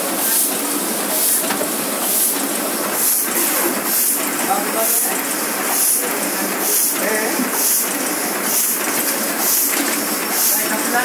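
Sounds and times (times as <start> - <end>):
printing press clatter and hiss: 0.0 - 11.0.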